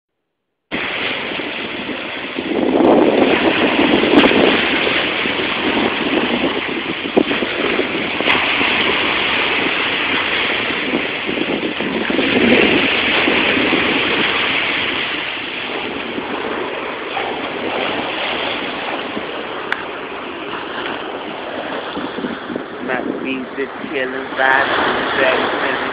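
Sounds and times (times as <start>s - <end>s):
waves breaking on sand and rocks: 0.7s - 25.9s.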